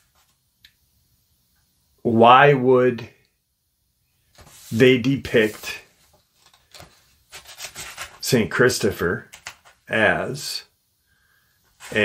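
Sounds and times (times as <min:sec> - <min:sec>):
faint rubbing noises: 0:04.2 - 0:08.6, 0:11.6 - 0:12.0.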